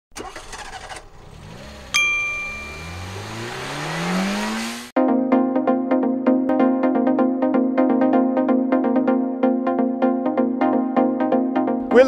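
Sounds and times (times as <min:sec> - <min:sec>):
car engine revving: 0:00.1 - 0:05.0
sharp metallic ding: 0:01.9 - 0:03.7.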